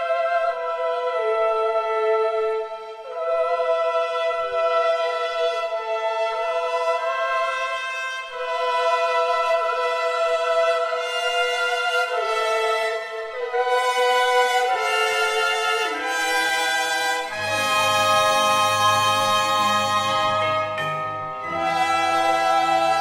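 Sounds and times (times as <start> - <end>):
lower brass instruments: 2.8 - 23.0.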